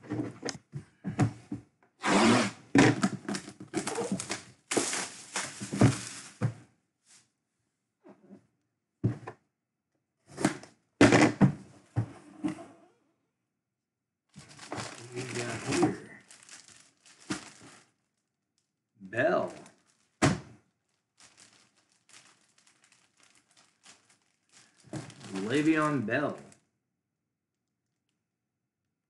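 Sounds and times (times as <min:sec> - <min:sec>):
plastic bag crinkling: 0:03.3 - 0:06.5, 0:14.3 - 0:18.7, 0:19.3 - 0:26.6.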